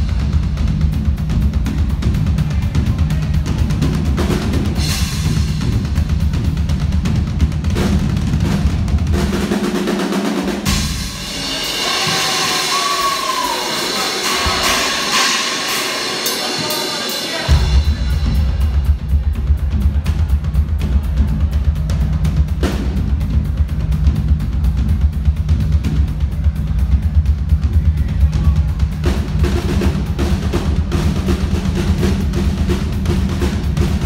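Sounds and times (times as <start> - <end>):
rock band playing live: 0.0 - 34.0
ringing cymbals: 10.7 - 18.8.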